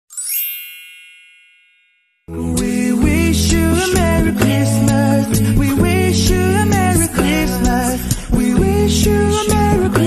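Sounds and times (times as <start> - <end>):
shimmering chime sound effect: 0.1 - 2.3.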